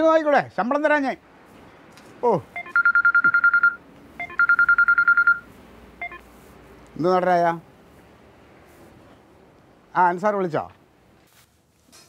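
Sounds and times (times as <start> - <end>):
mobile phone ringing: 2.6 - 6.3.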